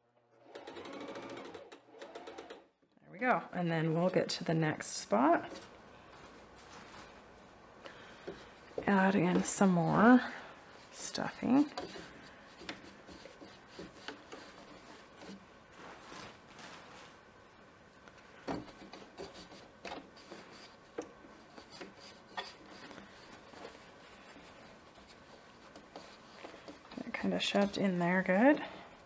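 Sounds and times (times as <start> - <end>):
rustling of stuffing and fabric: 3.2 - 29.0.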